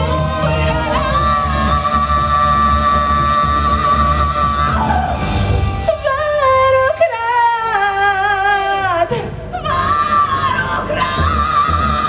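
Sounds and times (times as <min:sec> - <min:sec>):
woman singing with vibrato: 0:00.0 - 0:12.0.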